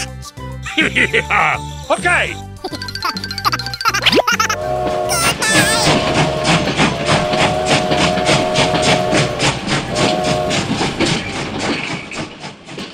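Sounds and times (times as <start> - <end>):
toy train chugging: 2.6 - 12.9
whistle-like tone: 4.6 - 11.4.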